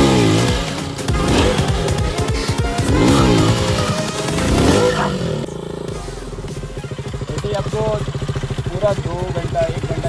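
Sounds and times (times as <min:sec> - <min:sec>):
background music with steady beat: 0:00.0 - 0:10.0
motorcycle engine revving: 0:00.0 - 0:10.0.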